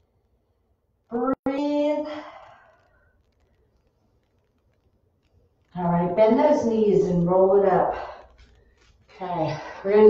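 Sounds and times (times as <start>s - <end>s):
faint clicks: 2.3s - 5.8s.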